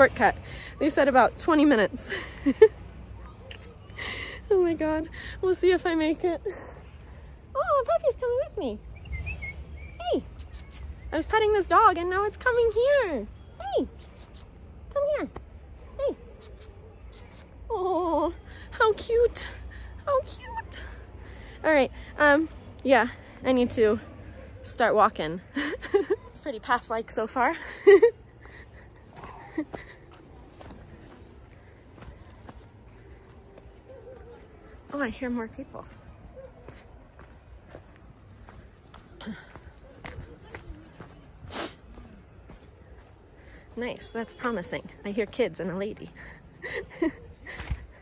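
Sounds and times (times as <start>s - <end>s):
distant voices: 0.0s - 48.0s
small bird chirping: 8.9s - 11.2s, 13.4s - 14.9s
footsteps on dirt trail: 28.4s - 46.4s.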